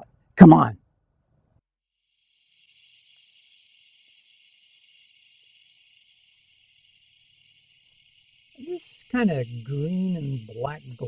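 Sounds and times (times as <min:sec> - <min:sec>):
insect chorus hiss: 0:02.0 - 0:11.0.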